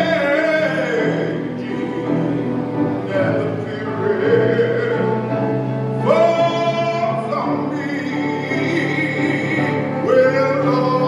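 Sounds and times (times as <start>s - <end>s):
gospel solo singing: 0.0s - 11.0s.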